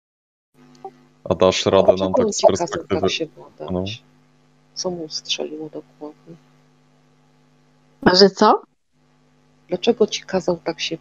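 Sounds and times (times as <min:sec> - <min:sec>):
low electrical hum: 0:00.6 - 0:11.0
person speaking: 0:01.3 - 0:04.0.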